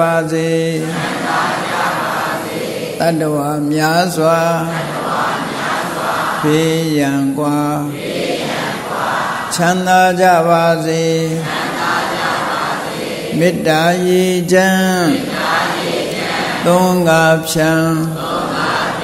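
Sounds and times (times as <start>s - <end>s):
monk chanting: 0.0s - 8.1s, 9.5s - 19.0s
congregation repeating chant: 0.0s - 19.0s.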